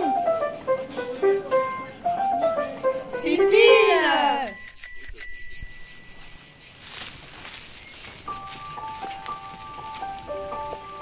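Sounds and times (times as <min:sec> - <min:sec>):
held musical notes: 0:00.0 - 0:06.5
cicadas chirring: 0:00.0 - 0:11.0
bell-like ring: 0:03.9 - 0:06.4.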